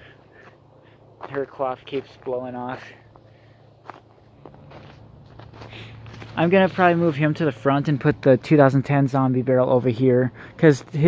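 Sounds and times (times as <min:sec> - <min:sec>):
footsteps on fallen leaves: 0:03.8 - 0:07.4.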